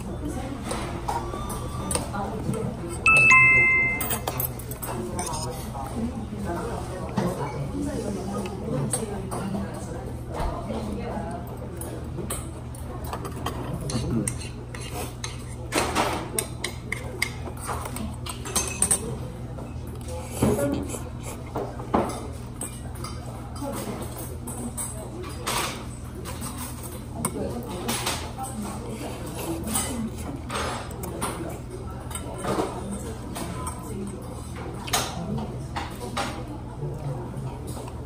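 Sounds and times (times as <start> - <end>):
utensils clinking on metal pot: 2.9 - 5.5, 16.4 - 19.1.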